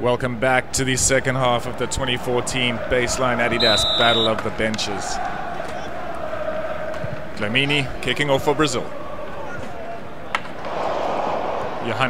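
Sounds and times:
onlookers chatting: 0:00.2 - 0:12.0.

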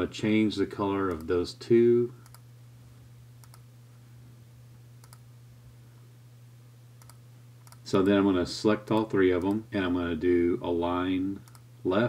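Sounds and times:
steady low hum: 0:00.0 - 0:12.0
computer mouse clicks: 0:02.2 - 0:02.4, 0:03.4 - 0:03.6, 0:05.0 - 0:05.2, 0:07.0 - 0:08.2, 0:11.4 - 0:11.6.

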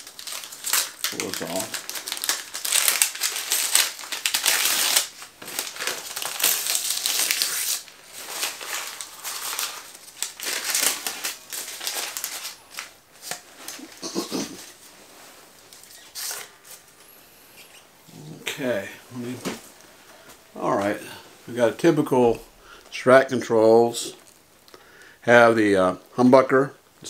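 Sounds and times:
packing material crinkling: 0:00.0 - 0:17.0.

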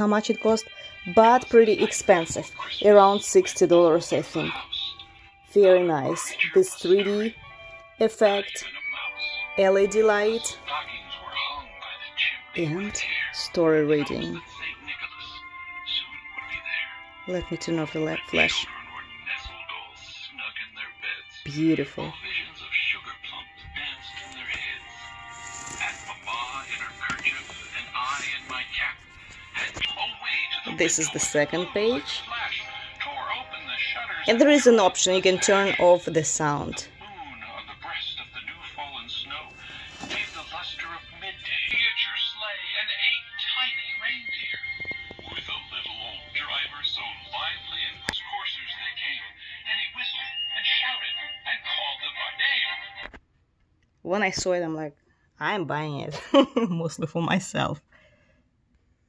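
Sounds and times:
recorded voice: 0:00.0 - 0:25.1, 0:25.8 - 0:53.2, 0:54.0 - 0:57.9
sound module music: 0:00.0 - 0:52.1.

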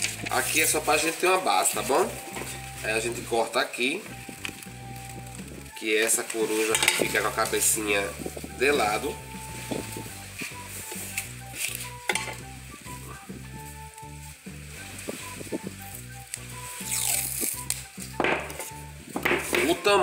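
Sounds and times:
soft background music: 0:00.0 - 0:20.0
paper and scissors handling: 0:06.0 - 0:07.6, 0:09.6 - 0:12.4, 0:14.8 - 0:18.8
masking tape pulled off roll: 0:09.8 - 0:12.1, 0:14.8 - 0:18.8.

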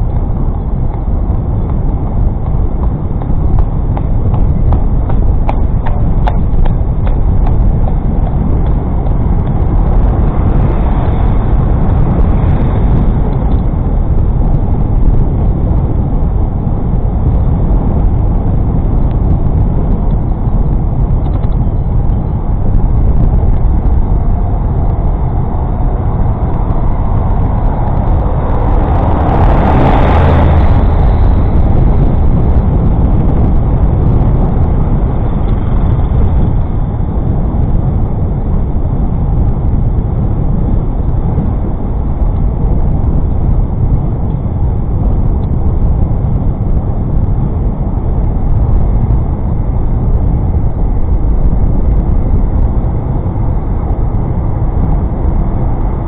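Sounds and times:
bicycle tyres rolling on path: 0:00.0 - 0:56.0
wind rushing on microphone: 0:00.0 - 0:56.0.

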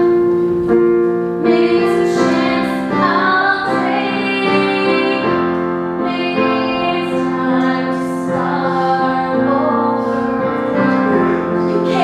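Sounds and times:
piano accompaniment: 0:00.0 - 0:12.0
woman singing: 0:01.4 - 0:12.0.

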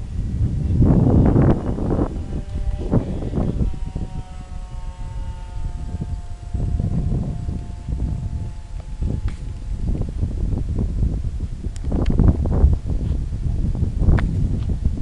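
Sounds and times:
electric motors humming overhead: 0:00.0 - 0:15.0
wind buffeting microphone: 0:00.0 - 0:15.0.

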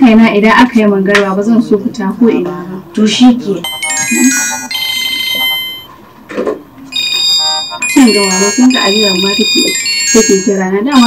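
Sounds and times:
mobile phone ringtone melody: 0:03.6 - 0:05.9, 0:06.9 - 0:11.0.

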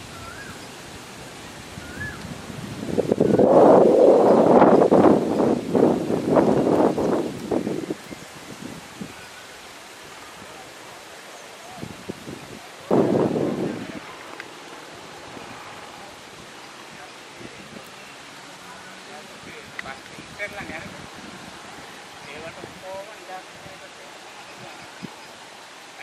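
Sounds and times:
wind buffeting microphone: 0:00.0 - 0:18.5, 0:19.3 - 0:25.8
outdoor hiss: 0:00.0 - 0:26.0.

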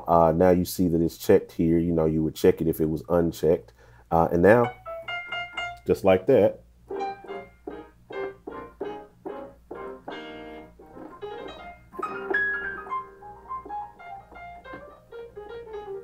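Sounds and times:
piano playing: 0:04.5 - 0:06.3, 0:06.9 - 0:16.0.

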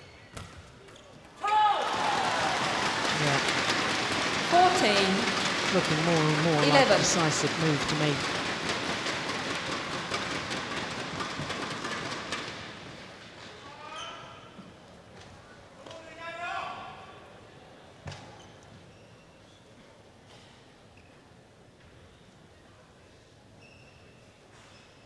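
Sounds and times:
low hall background: 0:00.0 - 0:25.0
crowd applauding: 0:01.8 - 0:12.3
shoe squeaks: 0:13.8 - 0:14.6, 0:18.3 - 0:19.7, 0:23.6 - 0:25.0.

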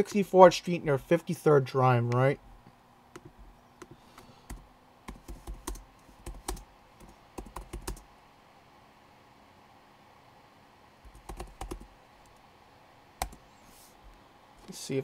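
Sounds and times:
typing on computer keyboard: 0:04.4 - 0:08.0, 0:11.1 - 0:11.9.

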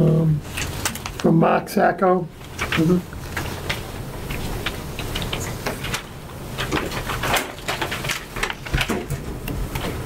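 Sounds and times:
low room hum: 0:00.0 - 0:10.0
paper rustling and shuffling: 0:00.5 - 0:01.5, 0:02.4 - 0:10.0.

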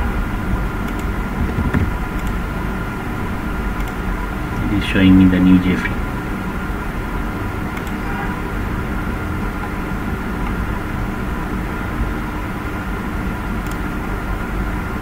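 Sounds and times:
background hum and hiss: 0:00.0 - 0:15.0
faint clicks: 0:03.8 - 0:04.0, 0:07.8 - 0:08.0, 0:13.6 - 0:13.9.

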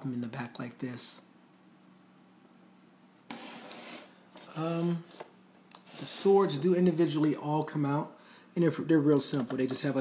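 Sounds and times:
faint steady hum: 0:00.0 - 0:10.0
rubbing scraping handling noise: 0:03.3 - 0:07.3.

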